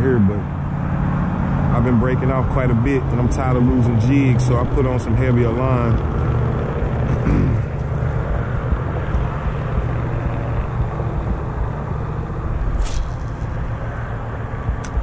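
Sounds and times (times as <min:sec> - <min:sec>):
road traffic rumble: 0:00.0 - 0:15.0
sharp click: 0:14.8 - 0:15.0.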